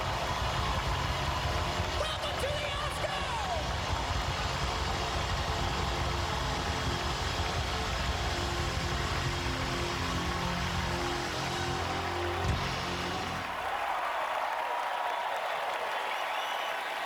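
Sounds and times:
rock drums: 0.0 - 13.4
crowd cheering and applauding: 0.0 - 17.0
distorted electric guitar: 3.5 - 13.4.

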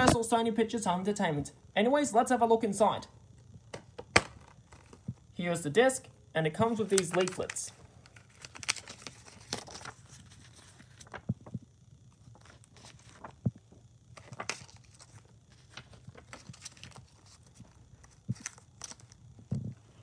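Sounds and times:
paper rustling: 6.6 - 11.5, 12.2 - 13.5, 14.1 - 19.2.

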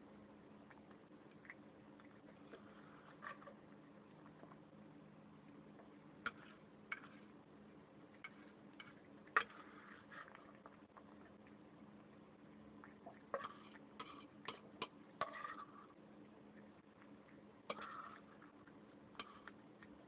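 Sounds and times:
cat chewing and licking: 0.0 - 20.0.

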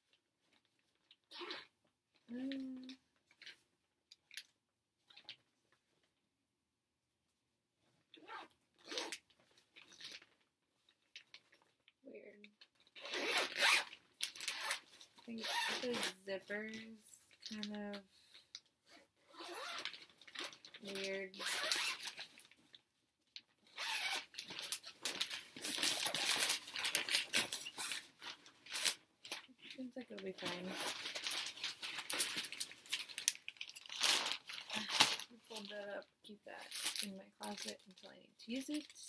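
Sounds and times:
zipper being pulled: 1.3 - 1.7, 8.2 - 9.2, 12.9 - 16.2, 18.9 - 22.3, 23.6 - 28.1, 30.5 - 32.6
plastic bag rustling: 19.6 - 22.8, 23.8 - 36.0.

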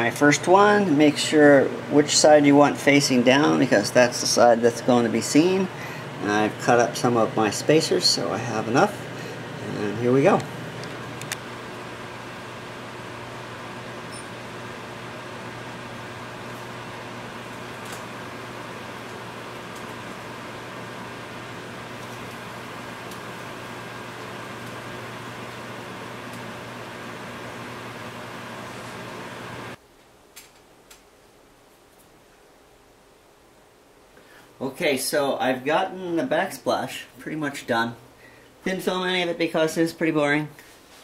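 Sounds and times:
machine hum and hiss: 0.0 - 30.2.

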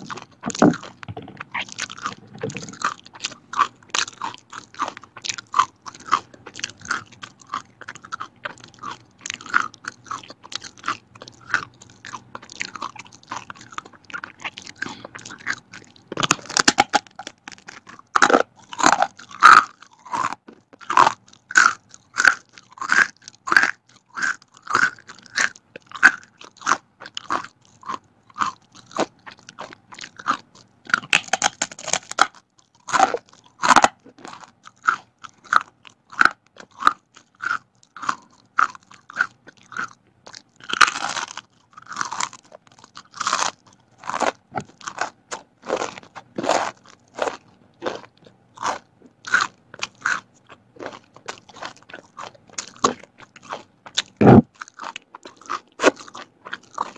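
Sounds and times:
chewing crispy crackers: 0.0 - 56.9.

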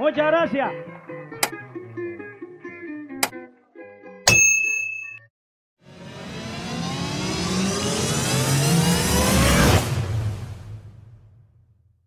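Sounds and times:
click with bell-like ding: 4.3 - 5.3
rising whoosh: 5.8 - 11.6.

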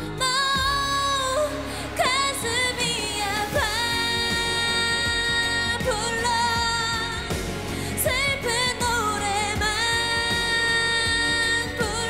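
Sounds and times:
woman singing a ballad: 0.0 - 12.0.

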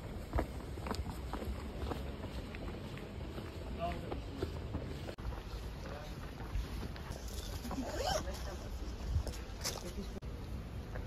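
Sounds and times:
footsteps: 0.0 - 10.2.

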